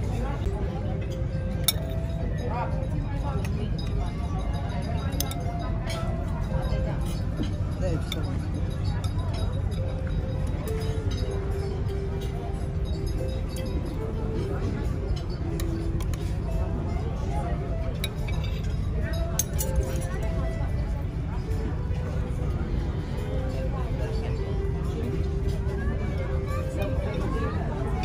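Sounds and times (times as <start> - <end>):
background music: 0.0 - 28.0
cutlery clinking on platter: 1.0 - 16.5, 17.9 - 20.6.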